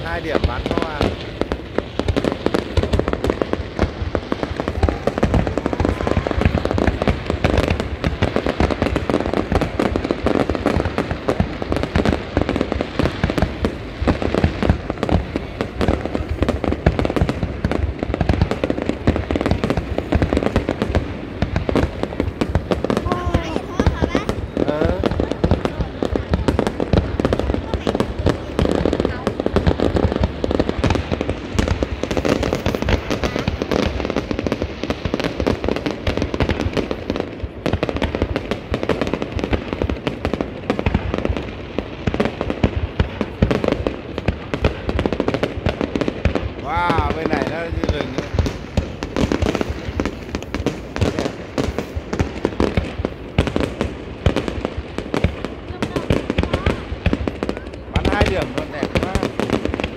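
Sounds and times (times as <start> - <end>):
fireworks bursting and crackling: 0.0 - 59.9.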